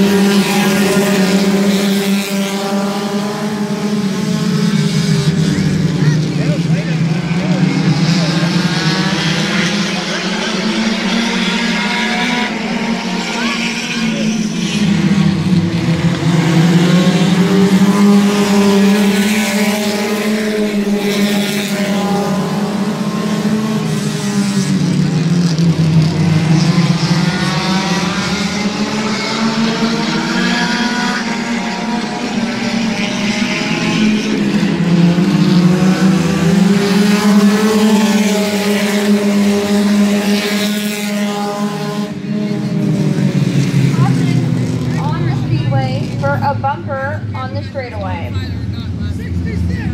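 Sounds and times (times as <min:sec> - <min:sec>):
race car engines revving: 0:00.0 - 0:49.9.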